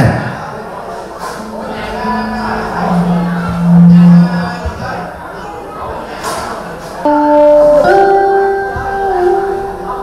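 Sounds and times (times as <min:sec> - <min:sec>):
live band music: 0:01.2 - 0:05.2, 0:07.1 - 0:10.0
man singing a long low note: 0:01.4 - 0:05.1.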